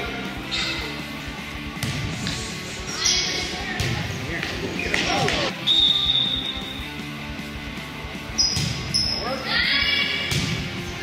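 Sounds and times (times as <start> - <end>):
high steady whistle: 5.6 - 6.8
sneakers squeaking on floor: 8.2 - 9.4.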